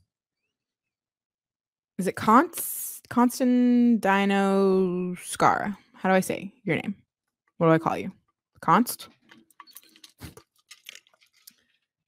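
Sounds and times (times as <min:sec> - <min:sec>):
person sipping a drink: 0:09.6 - 0:11.7.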